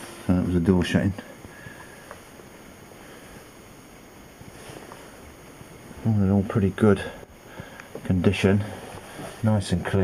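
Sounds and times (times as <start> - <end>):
boat cabin background hiss: 0.0 - 10.0.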